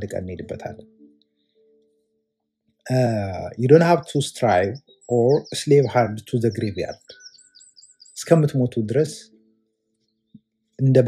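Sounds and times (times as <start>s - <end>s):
man talking: 0.0s - 0.8s, 2.9s - 7.0s, 8.2s - 9.3s, 10.8s - 11.0s.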